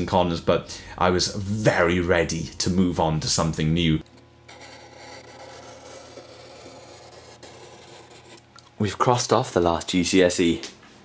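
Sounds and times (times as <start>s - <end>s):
marker pen rubbing on paper: 4.5s - 8.4s.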